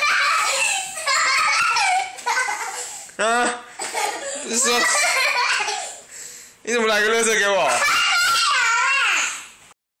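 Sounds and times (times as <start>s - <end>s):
girl squealing with laughter: 0.0s - 3.0s, 7.7s - 9.4s.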